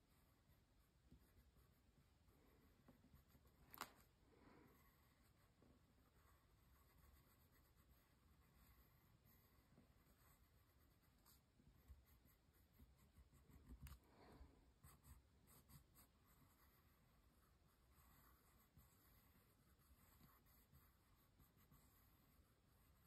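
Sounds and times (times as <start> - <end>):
pencil scratching on paper: 0.0 - 3.6, 4.7 - 14.0, 14.7 - 23.0.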